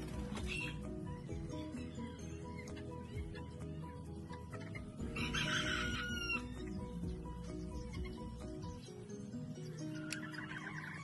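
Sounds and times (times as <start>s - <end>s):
background music: 0.0s - 11.0s
rooster crowing: 5.1s - 6.6s.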